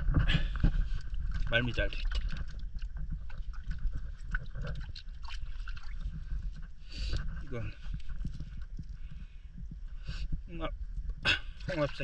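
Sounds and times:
low rumble: 0.0 - 11.8.

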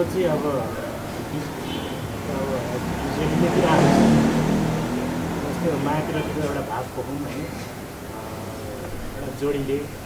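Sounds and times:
vehicle engine: 0.8 - 6.8.

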